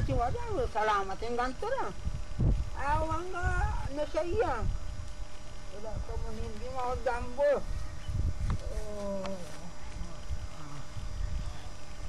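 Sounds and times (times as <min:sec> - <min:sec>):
constant low rumble: 0:00.0 - 0:12.0.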